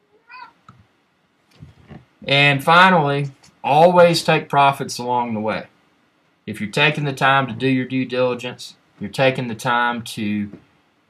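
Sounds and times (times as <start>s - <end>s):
cat meowing: 0.0s - 0.6s.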